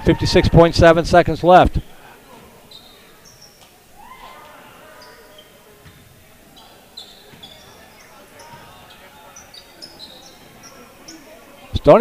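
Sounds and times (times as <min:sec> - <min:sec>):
sneakers squeaking on court: 0:01.8 - 0:11.8.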